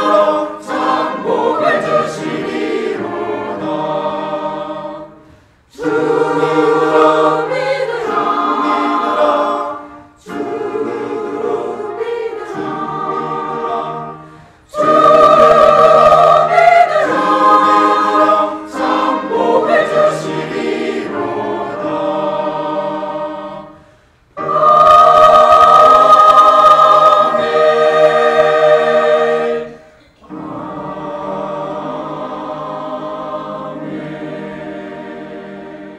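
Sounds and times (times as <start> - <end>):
church choir singing: 0.0 - 35.9.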